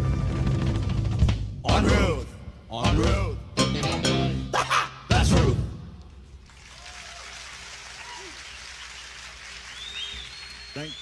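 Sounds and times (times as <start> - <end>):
audience applauding: 6.4 - 11.0
high whistles: 8.2 - 11.0.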